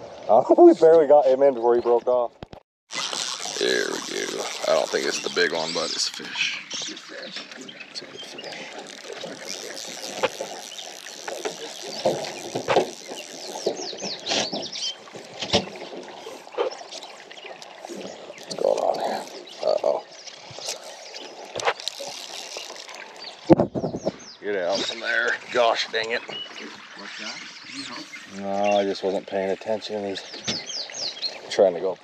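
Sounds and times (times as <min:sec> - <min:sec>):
water sloshing against boat hull: 0:03.9 - 0:28.3, 0:30.2 - 0:31.6.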